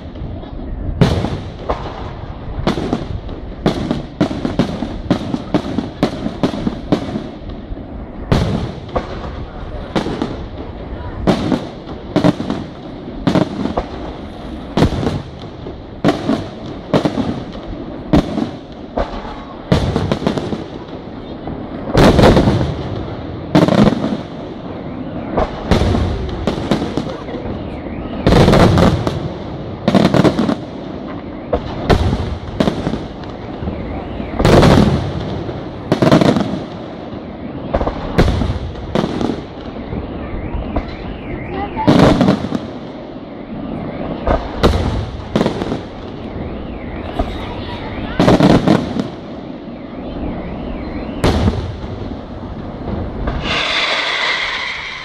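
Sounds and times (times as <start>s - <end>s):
firework shells bursting: 53.1s - 55.0s.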